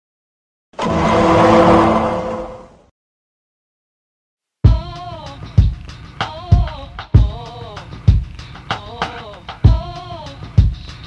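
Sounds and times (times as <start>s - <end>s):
rushing swell sound effect: 0.8s - 2.8s.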